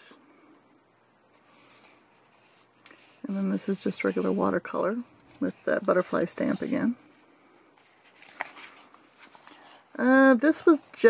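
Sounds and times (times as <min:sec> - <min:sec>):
paper page rustling: 0:01.4 - 0:04.5, 0:05.1 - 0:07.0, 0:07.8 - 0:09.9.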